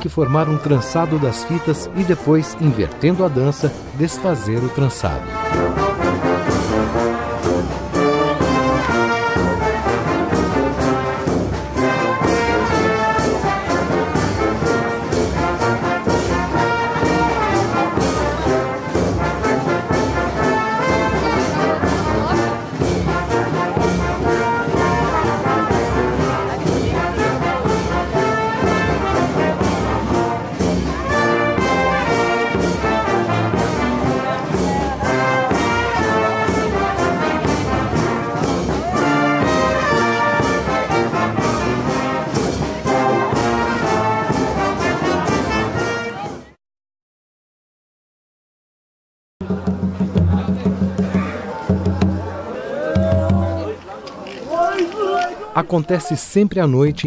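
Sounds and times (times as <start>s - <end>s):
brass band playing lively tune: 0.0s - 46.6s, 49.4s - 52.4s.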